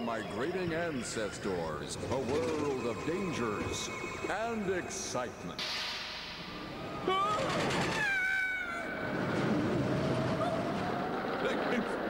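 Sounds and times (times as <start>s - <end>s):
high-pitched cartoon voices crying out: 6.9s - 9.2s.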